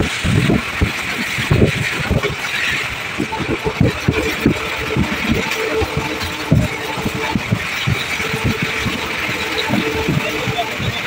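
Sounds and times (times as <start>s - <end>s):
rolling train wheels and wind: 0.0s - 11.0s.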